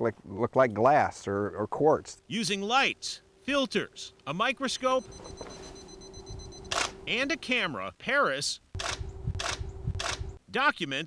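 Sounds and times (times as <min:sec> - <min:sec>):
faint hum: 0:01.4 - 0:08.0, 0:08.6 - 0:10.4
camera shutter click: 0:06.7 - 0:07.0, 0:08.8 - 0:10.3.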